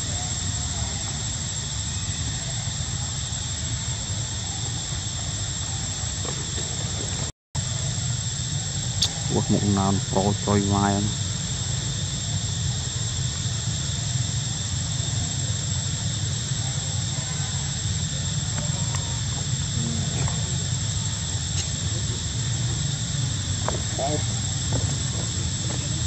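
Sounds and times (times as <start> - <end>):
faint distant voices: 0.0 - 7.2, 11.7 - 26.0
constant high whine: 0.0 - 26.0.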